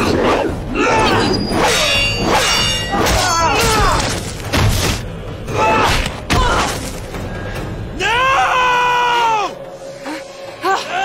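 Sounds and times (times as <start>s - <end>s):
film score music: 0.0s - 11.0s.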